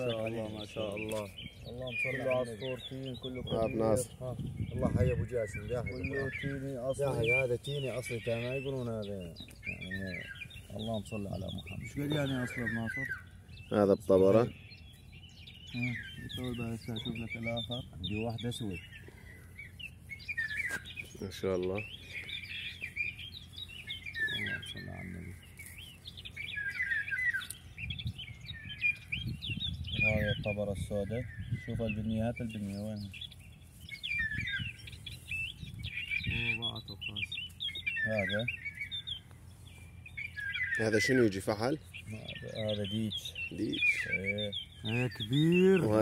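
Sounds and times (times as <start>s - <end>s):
small birds chirping: 0.0s - 46.0s.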